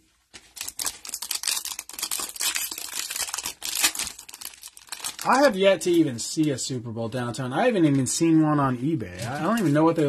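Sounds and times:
plastic wrapper crinkling and tearing: 0.4s - 6.0s.

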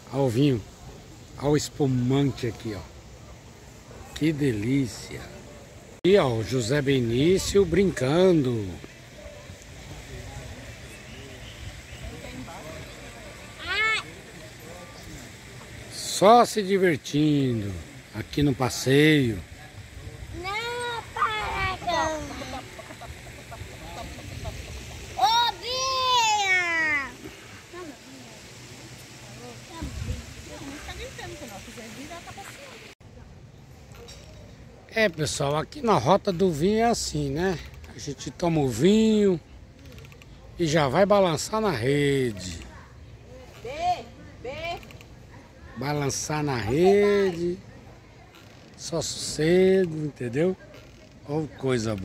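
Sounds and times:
faint distant voices: 0.0s - 52.0s.

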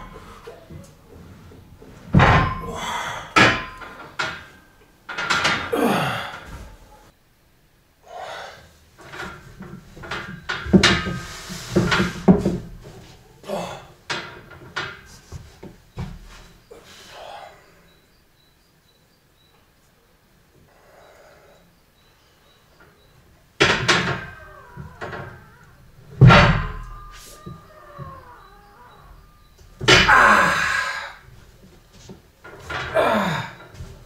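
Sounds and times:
weight machine thudding and clanking: 1.8s - 6.7s, 9.1s - 13.0s, 23.6s - 30.8s.

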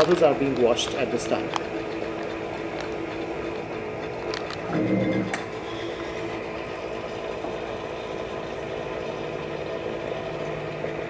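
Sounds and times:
laboratory instrument humming: 0.0s - 11.0s.

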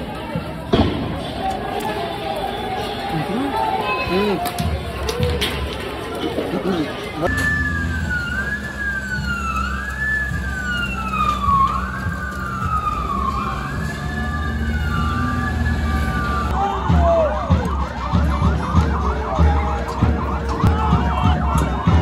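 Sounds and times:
police siren wailing and yelping: 7.2s - 22.0s.

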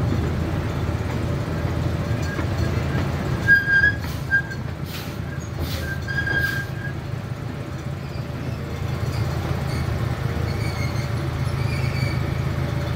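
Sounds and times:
brief high squeal: 3.4s - 4.6s, 5.6s - 7.0s, 9.7s - 12.3s.

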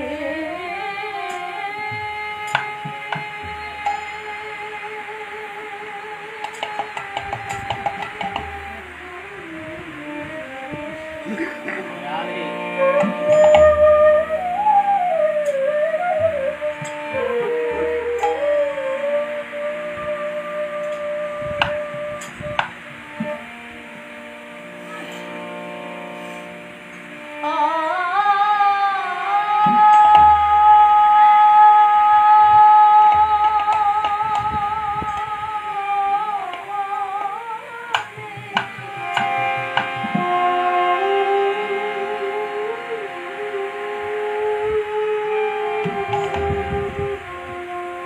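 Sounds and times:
flute holding long note: 0.0s - 48.0s
harmonium drone: 0.0s - 48.0s.

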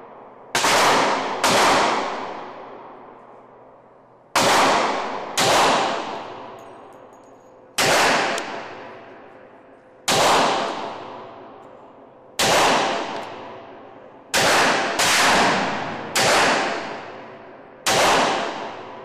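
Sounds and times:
pistol shots echoing: 0.0s - 3.2s, 4.3s - 19.0s.

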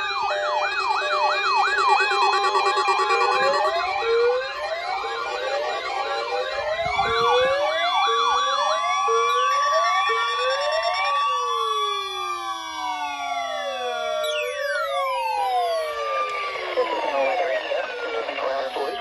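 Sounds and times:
weather radio alert alarms: 0.0s - 19.0s
steady high tone: 0.6s - 3.9s, 14.0s - 19.0s.

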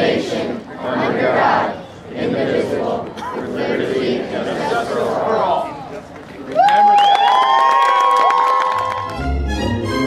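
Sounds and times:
crowd cheering: 4.7s - 9.4s
scattered clapping: 6.1s - 9.3s
orchestral string music: 9.0s - 10.0s.

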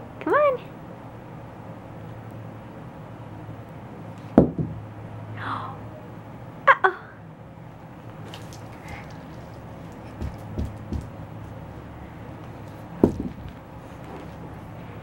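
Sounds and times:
hula hoop thumps on carpet: 10.2s - 11.2s, 13.0s - 13.6s.

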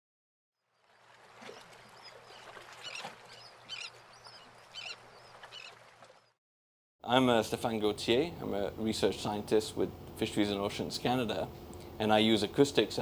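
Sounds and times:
short high bird calls: 1.6s - 5.8s.

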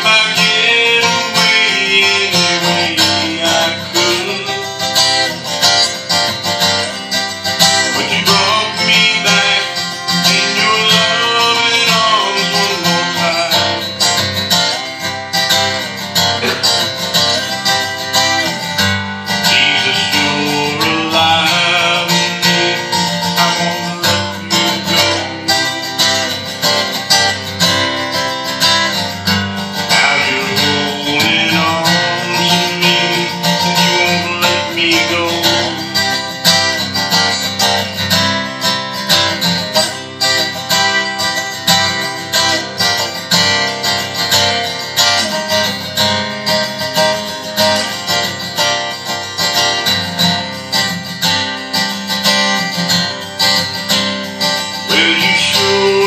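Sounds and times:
man singing: 0.0s - 5.9s, 7.7s - 14.2s, 19.3s - 26.4s, 29.8s - 36.7s, 54.7s - 56.0s
acoustic guitar strumming: 0.0s - 56.0s.

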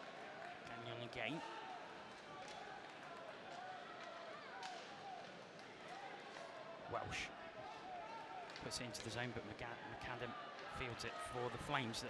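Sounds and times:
indistinct crowd voices: 1.4s - 12.0s.

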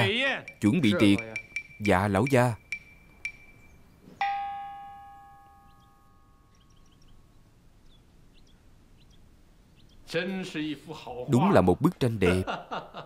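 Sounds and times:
bell-like chime: 0.5s - 7.0s.

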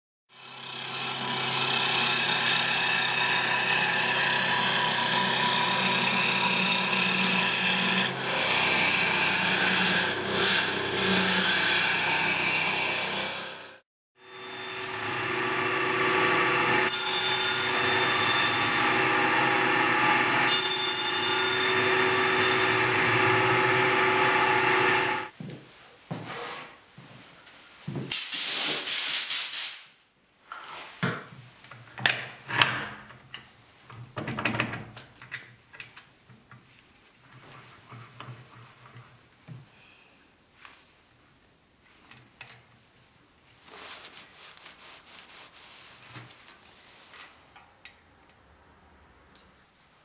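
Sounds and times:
lathe motor hum: 0.4s - 25.3s
turning tool scraping wood: 14.5s - 25.3s.

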